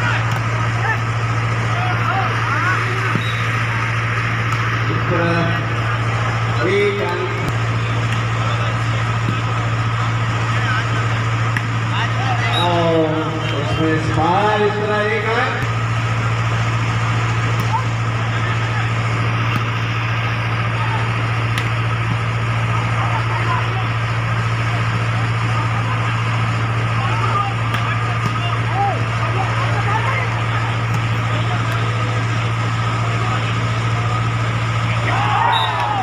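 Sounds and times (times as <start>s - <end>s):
low mechanical hum: 0.0s - 36.0s
voices of players and spectators: 0.0s - 36.0s
volleyball being struck: 0.1s - 0.6s, 3.0s - 5.0s, 6.8s - 8.5s, 11.4s - 11.8s, 15.5s - 15.9s, 17.4s - 17.8s, 19.4s - 20.0s, 21.4s - 22.3s, 27.6s - 28.7s, 30.8s - 32.0s.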